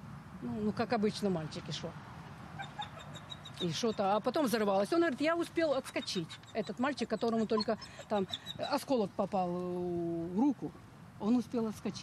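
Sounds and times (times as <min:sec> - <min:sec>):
woman's voice: 0:03.6 - 0:10.6.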